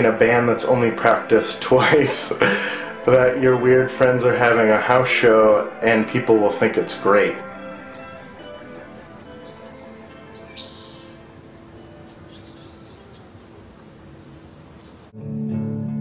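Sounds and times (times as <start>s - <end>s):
faint musical drone: 0.0s - 16.0s
high bird chirps: 7.6s - 15.1s.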